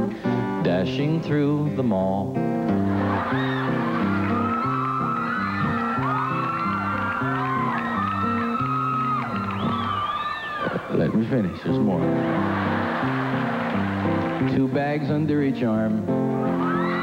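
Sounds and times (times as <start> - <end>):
live music with bouncy bass: 0.0 - 10.0, 10.7 - 17.0
audience cheering and whooping: 2.8 - 14.5, 16.4 - 17.0
high whoops and squeals: 3.0 - 11.7, 16.4 - 17.0.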